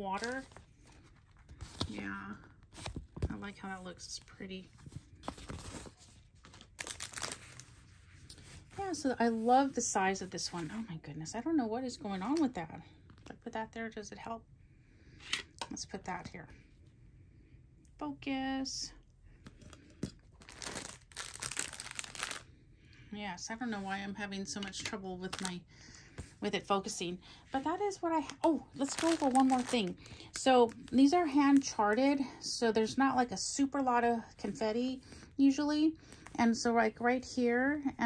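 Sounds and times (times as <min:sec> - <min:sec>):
plastic film crinkling: 0:00.0 - 0:02.1, 0:05.2 - 0:07.9, 0:19.5 - 0:22.5, 0:25.2 - 0:25.6, 0:28.1 - 0:31.9.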